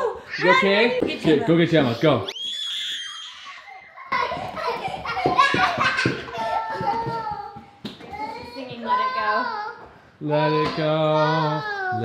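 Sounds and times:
footfalls on hard floor: 4.2s - 8.7s.

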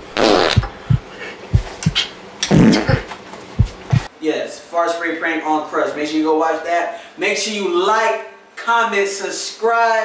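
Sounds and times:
short low thumps: 0.0s - 3.0s, 3.6s - 4.1s
raspy fart noise: 0.0s - 4.1s.

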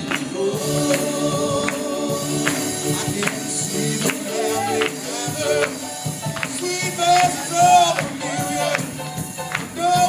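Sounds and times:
sharp percussive beat: 0.0s - 10.0s
woman and man singing gospel: 0.0s - 10.0s.

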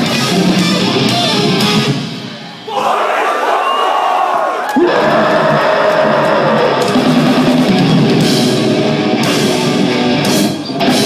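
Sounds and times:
live metal band playing: 0.0s - 2.3s, 4.8s - 11.0s.

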